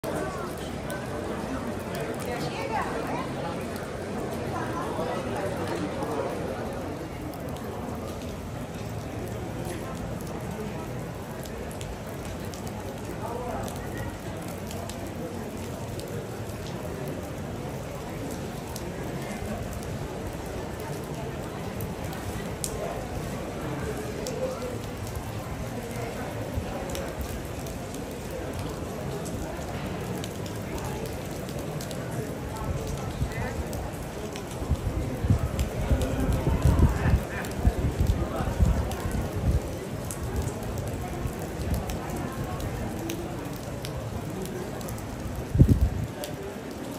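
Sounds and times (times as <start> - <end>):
rain on wet pavement: 0.0 - 46.9.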